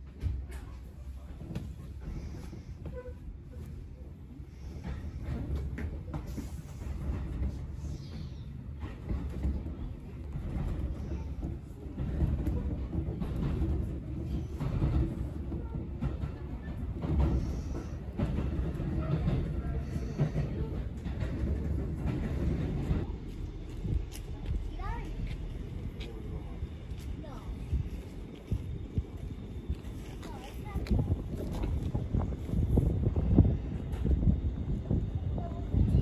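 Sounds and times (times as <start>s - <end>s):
train rumble inside carriage: 0.0s - 36.0s.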